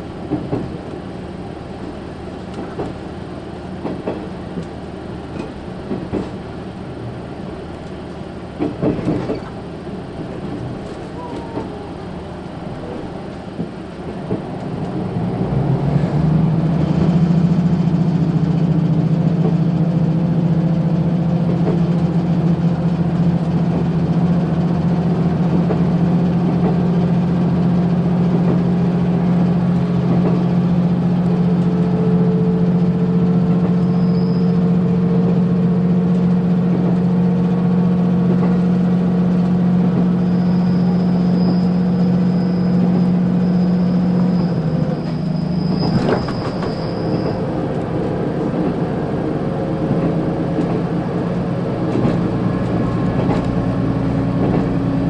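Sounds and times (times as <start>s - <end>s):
diesel engine drone: 0.0s - 55.0s
train running noise: 0.0s - 55.0s.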